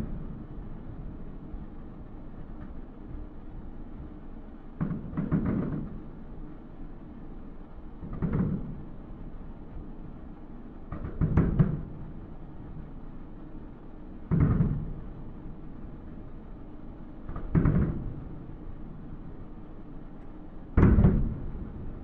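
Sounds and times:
distant fireworks booming: 0:04.8 - 0:06.1, 0:08.0 - 0:08.9, 0:14.2 - 0:15.4, 0:17.2 - 0:19.1, 0:20.7 - 0:22.0.

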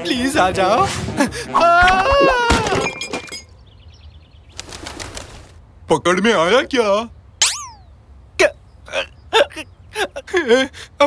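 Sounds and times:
pigeon wings flapping: 0:04.5 - 0:05.6.

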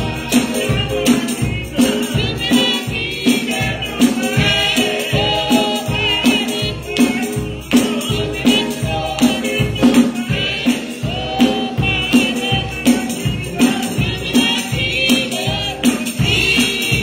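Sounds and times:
gospel choir and congregation singing: 0:00.0 - 0:17.0
tambourine shaking: 0:00.0 - 0:17.0.

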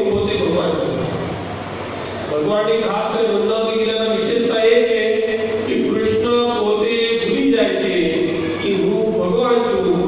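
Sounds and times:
man chanting: 0:02.3 - 0:10.0.

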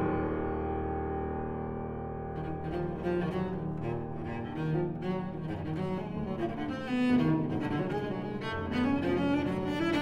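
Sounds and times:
flute cello and piano trio: 0:02.2 - 0:10.0.

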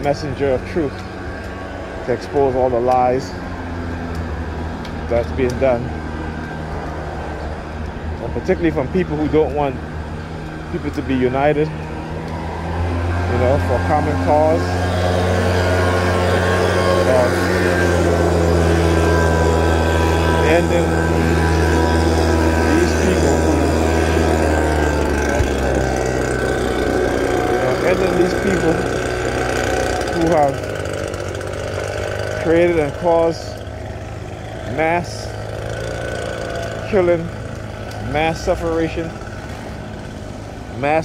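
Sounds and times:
low rumble of street traffic: 0:00.0 - 0:41.0
vehicle engine idling: 0:00.0 - 0:41.0.

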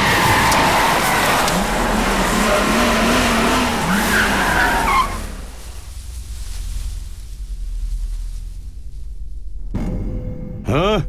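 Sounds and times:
car engine revving: 0:00.0 - 0:05.9
tyres skidding on dirt: 0:00.0 - 0:06.1.

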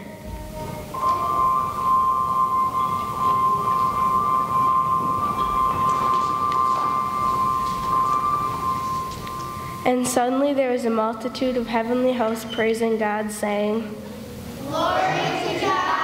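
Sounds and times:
high bell-like tone: 0:00.0 - 0:09.9
room murmur: 0:11.3 - 0:16.0.

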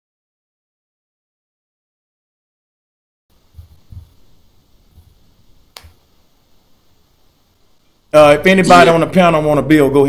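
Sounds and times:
faint steady hiss: 0:03.3 - 0:10.0
soft low thumps: 0:03.4 - 0:05.3
sharp click: 0:05.7 - 0:06.0.

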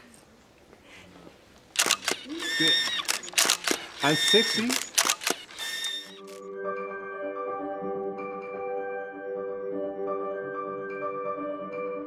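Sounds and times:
camera shutter click: 0:01.8 - 0:06.4.

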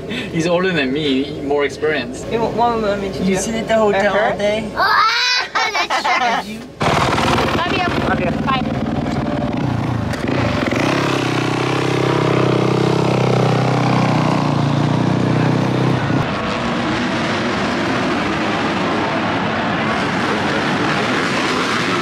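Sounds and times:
distant motorcycles racing: 0:06.7 - 0:22.0
dirt bike engine running: 0:06.8 - 0:15.5.

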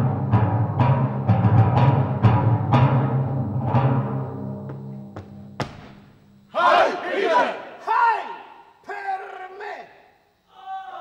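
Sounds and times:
men shouting in unison: 0:06.5 - 0:08.6.

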